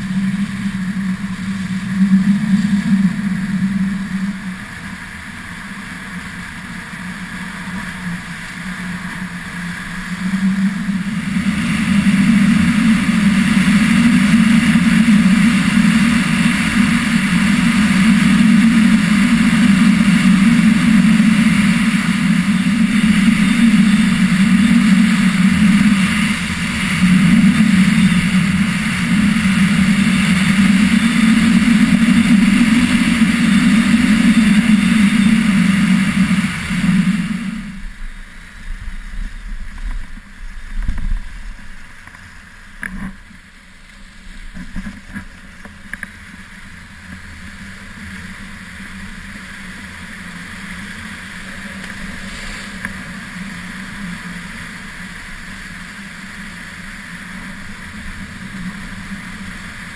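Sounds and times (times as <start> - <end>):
wind rushing over microphone: 0.0 - 41.9
skis hissing on snow: 49.4 - 59.9.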